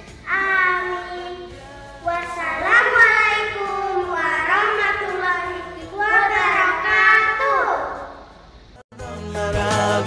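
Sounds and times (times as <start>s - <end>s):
girls reciting a prayer: 0.3s - 8.0s.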